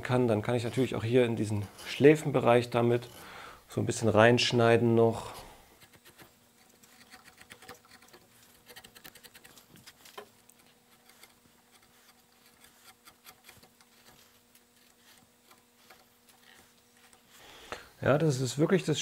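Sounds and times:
faint steady hum: 0:00.0 - 0:19.0
hand gouge carving wood: 0:00.5 - 0:03.3, 0:05.8 - 0:17.4.

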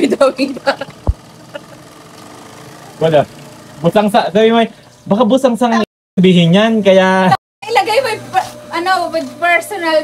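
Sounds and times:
low machine hum: 0:00.0 - 0:10.0.

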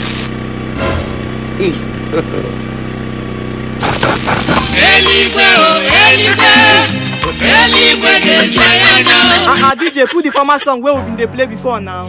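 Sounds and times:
electrical hum: 0:00.0 - 0:07.7
loud music through sound system: 0:04.7 - 0:09.7.

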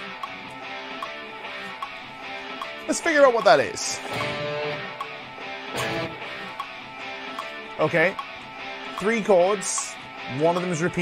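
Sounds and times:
guitar playing: 0:00.0 - 0:11.0.

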